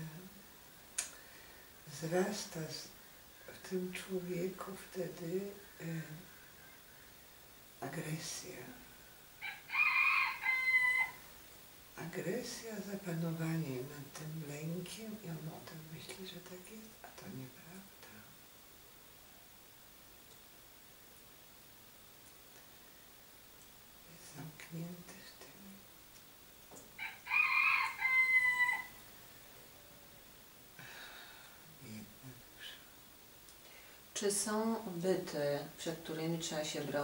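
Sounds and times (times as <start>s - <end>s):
rooster crowing: 9.4s - 11.3s, 27.0s - 29.1s.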